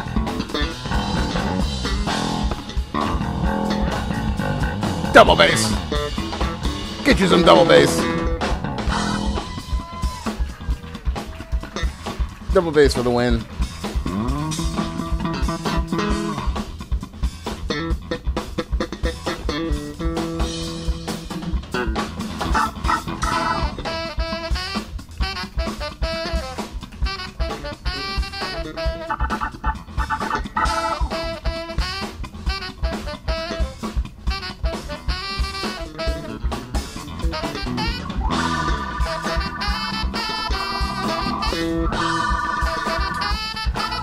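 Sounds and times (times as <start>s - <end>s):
funk band playing: 0.0s - 44.0s
saxophone melody: 22.5s - 44.0s.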